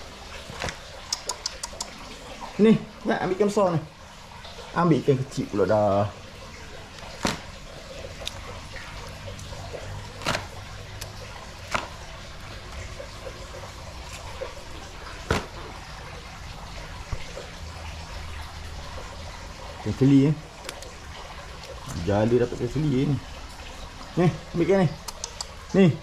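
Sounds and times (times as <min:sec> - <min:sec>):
faint trickle of water: 0:00.0 - 0:26.0
fish dropped on tiles: 0:07.1 - 0:07.5, 0:15.2 - 0:15.7.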